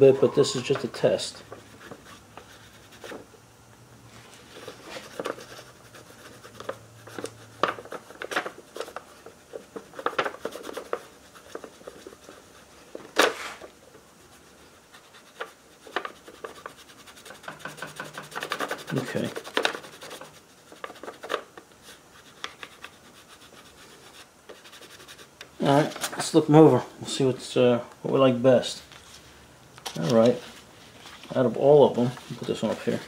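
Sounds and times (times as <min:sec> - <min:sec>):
paper rustling: 0:04.2 - 0:05.6, 0:28.8 - 0:33.0
fingertip scratching paper: 0:04.6 - 0:12.7, 0:14.3 - 0:25.3, 0:32.3 - 0:33.0.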